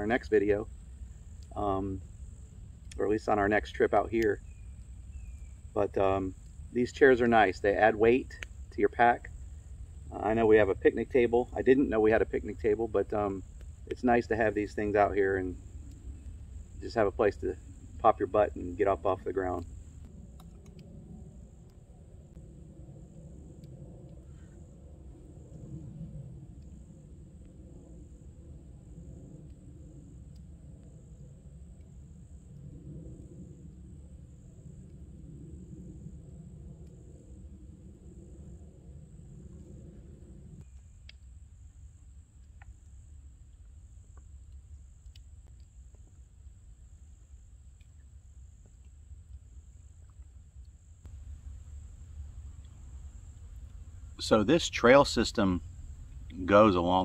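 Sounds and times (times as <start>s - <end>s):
pulsing insect chorus: 0.0s - 57.0s
faint clicks: 2.8s - 3.0s, 8.2s - 8.6s, 15.6s - 16.5s, 19.5s - 22.4s, 40.6s - 41.3s, 42.4s - 46.2s.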